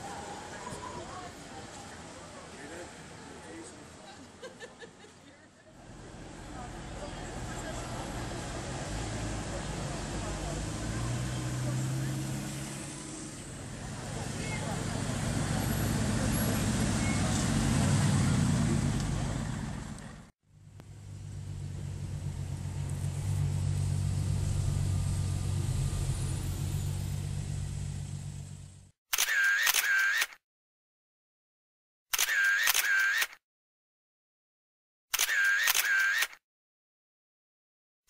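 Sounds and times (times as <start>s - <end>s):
car driving past: 5.8s - 20.2s, 20.8s - 28.9s
engine and tyre drone inside car: 19.8s - 28.9s.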